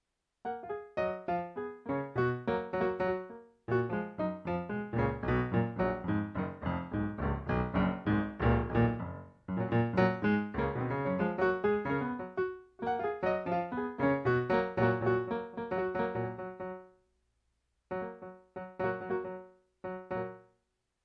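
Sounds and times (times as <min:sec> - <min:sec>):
piano playing fast scales: 0:00.5 - 0:16.9, 0:17.9 - 0:20.4.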